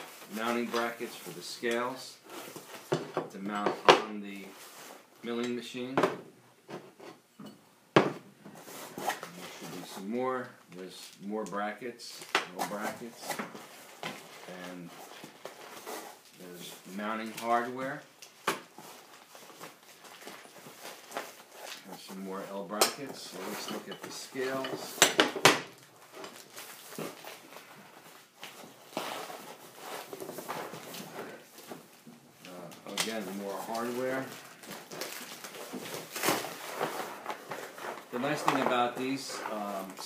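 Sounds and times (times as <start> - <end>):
cardboard packaging rustling: 12.5 - 40.0
hands rummaging in cardboard box: 33.0 - 40.0.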